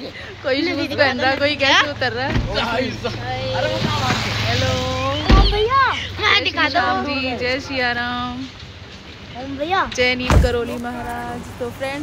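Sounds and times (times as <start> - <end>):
vehicle engine and tyres running: 0.0 - 12.0.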